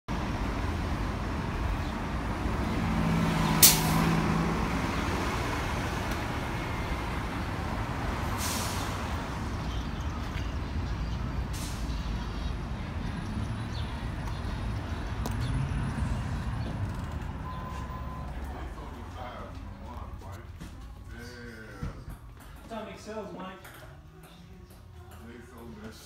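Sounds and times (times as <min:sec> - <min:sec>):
passing vehicles rumble: 0:00.1 - 0:26.0.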